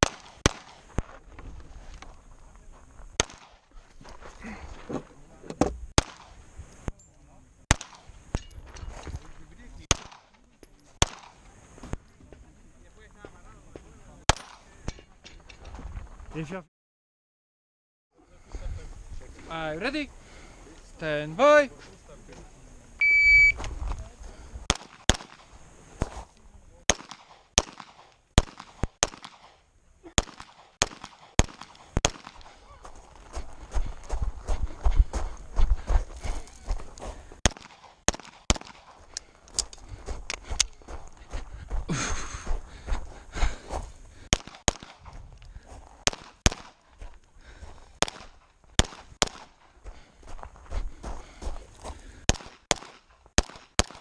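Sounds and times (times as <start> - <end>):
pistol shots: 0.0 - 0.9, 3.2 - 3.6, 6.0 - 6.4, 7.7 - 8.1, 9.9 - 10.4, 11.0 - 11.4, 24.7 - 25.6, 26.9 - 32.6, 37.4 - 39.1, 44.3 - 45.2, 46.0 - 46.8, 48.0 - 49.7, 52.3 - 54.0
shot timer beep: 23.0 - 23.6.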